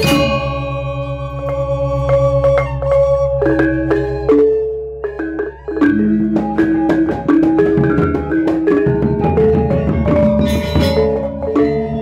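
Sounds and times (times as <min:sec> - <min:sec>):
gamelan metallophones ringing: 0:00.0 - 0:12.0.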